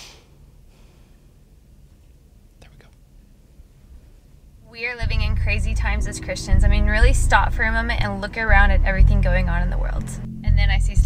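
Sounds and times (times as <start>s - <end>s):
low hum: 0.2s - 11.0s.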